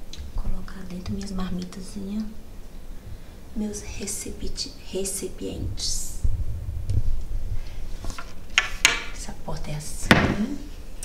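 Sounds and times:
low rumble: 2.9 - 8.2
sharp knocks: 10.1 - 10.6.

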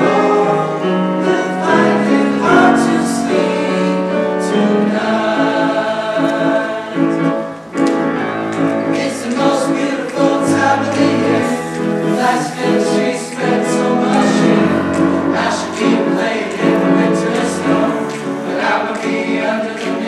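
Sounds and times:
men's choir singing: 0.0 - 7.8, 8.5 - 20.0.

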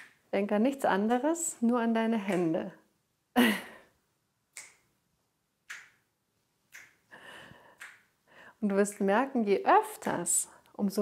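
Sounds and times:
finger snaps: 4.5 - 4.9, 5.6 - 6.0, 6.7 - 7.0, 7.7 - 8.1.

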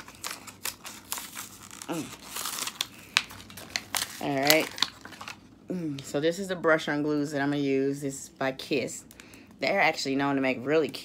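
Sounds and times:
packaging clicking and rustling: 0.0 - 5.4.

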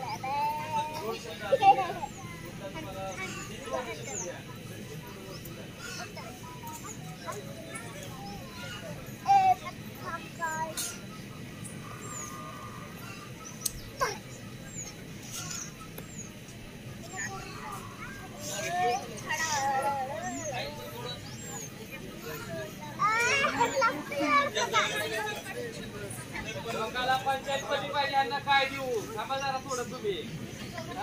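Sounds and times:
children calling out: 22.3 - 24.9.

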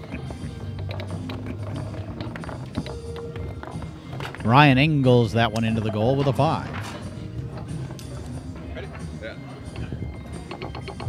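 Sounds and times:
foosball ball and rods clicking: 0.0 - 11.0.

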